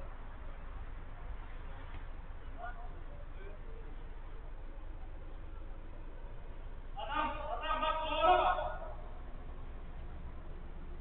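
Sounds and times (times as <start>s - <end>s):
man's high-pitched shout: 7.0s - 9.1s.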